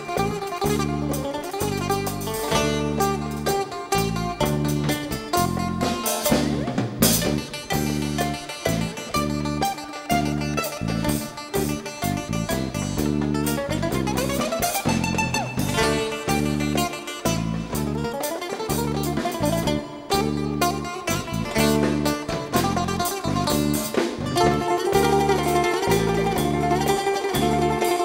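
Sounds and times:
drum kit: 0.0s - 28.0s
electric bass: 0.0s - 28.0s
goblet hand drum: 0.0s - 28.0s
plucked bouzouki melody: 0.0s - 28.0s.

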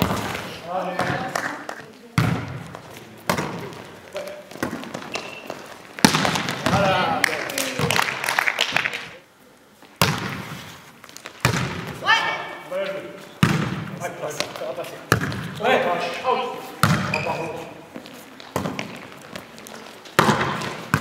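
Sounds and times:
volleyball hits: 0.0s - 8.2s, 10.0s - 12.1s, 13.4s - 15.6s, 16.8s - 17.4s, 18.4s - 19.5s, 20.1s - 21.0s
players calling out: 6.4s - 8.0s.

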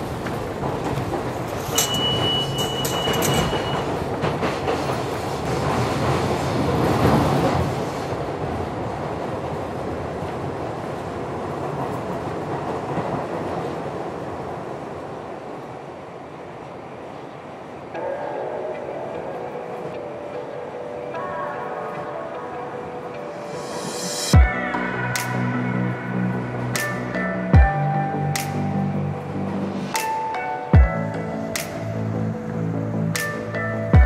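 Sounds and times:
subway train rumble and clatter: 0.0s - 34.0s.

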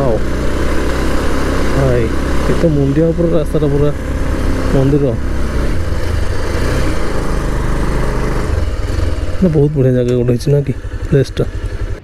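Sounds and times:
motorcycle engine running: 0.0s - 12.0s
wind and road noise: 0.0s - 12.0s.

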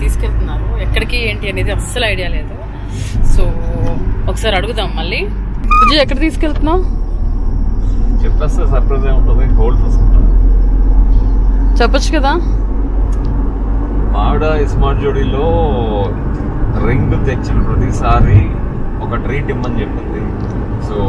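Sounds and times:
car cabin rumble while driving: 3.2s - 7.7s.

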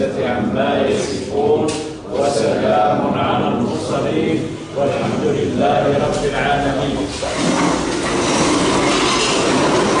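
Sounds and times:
chairs scraping on floor: 3.4s - 10.0s.

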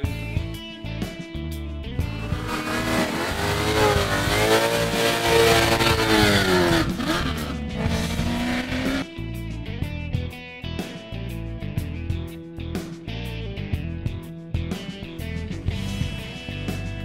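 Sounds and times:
background music: 0.0s - 17.0s
car engine revving hard: 2.1s - 9.0s
tyre noise: 2.2s - 9.0s.

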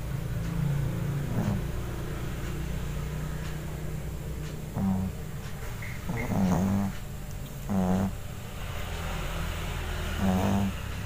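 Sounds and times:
cat snoring: 0.9s - 3.2s, 4.6s - 11.0s.

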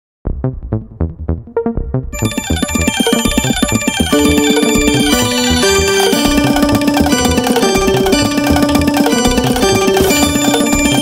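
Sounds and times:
music with steady beat: 0.3s - 11.0s
held melody notes: 2.2s - 11.0s.

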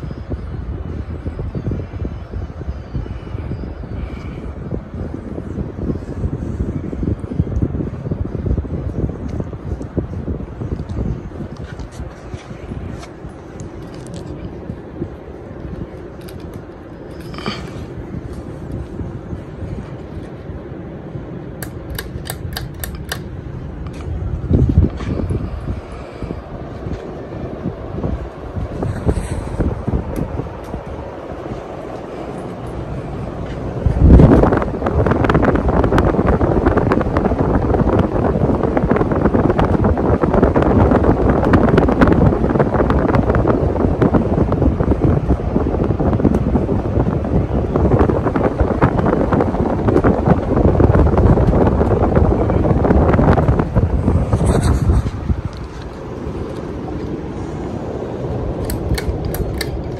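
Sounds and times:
ceiling fan air rush: 0.0s - 59.9s.

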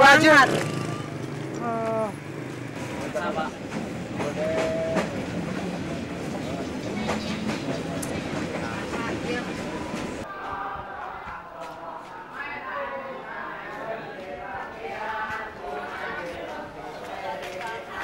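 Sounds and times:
train rumble inside carriage: 1.7s - 10.3s.

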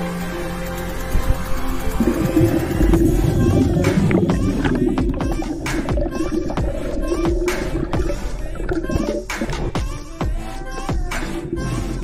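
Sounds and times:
muffled underwater water noise: 1.2s - 9.9s
bubbles: 2.0s - 9.9s.

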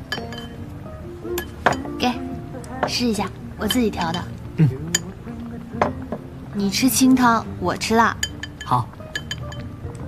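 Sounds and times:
utensils clinking on ceramic bowls: 0.1s - 0.6s, 8.0s - 9.7s.

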